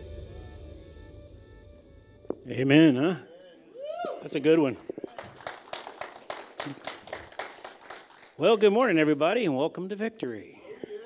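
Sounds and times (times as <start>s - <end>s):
people clapping: 4.8s - 8.7s.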